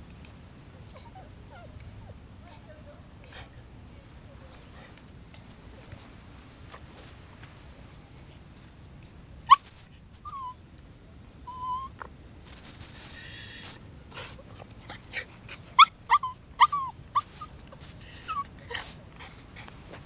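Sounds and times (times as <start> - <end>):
dog whining: 9.5 - 10.6, 11.4 - 14.3, 15.7 - 19.0.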